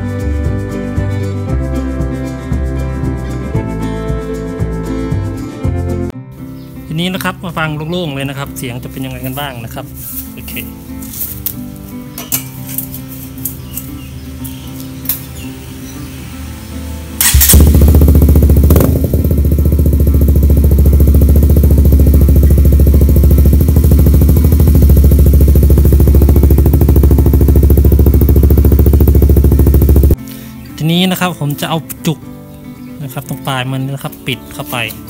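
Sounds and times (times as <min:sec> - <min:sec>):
motorcycle engine idling loud exhaust: 0:17.2 - 0:30.2.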